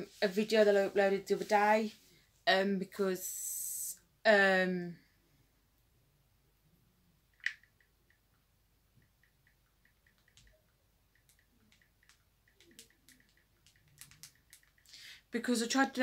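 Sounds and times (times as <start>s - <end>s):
faint clicks: 9.0s - 15.0s.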